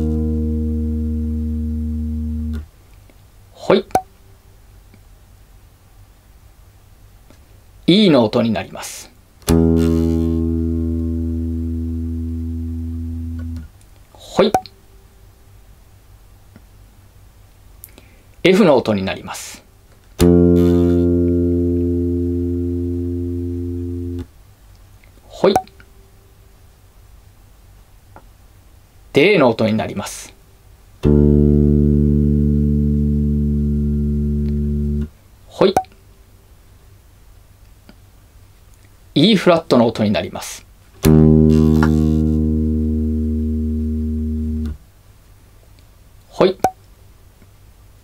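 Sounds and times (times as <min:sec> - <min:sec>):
electric bass note: 0:00.0 - 0:02.6, 0:09.5 - 0:13.7, 0:20.2 - 0:24.3, 0:31.0 - 0:35.1, 0:41.0 - 0:44.8.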